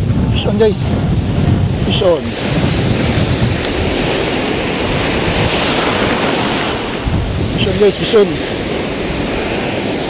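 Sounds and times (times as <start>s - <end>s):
wind buffeting microphone: 0.0s - 10.0s
surf breaking over rocks: 2.0s - 10.0s.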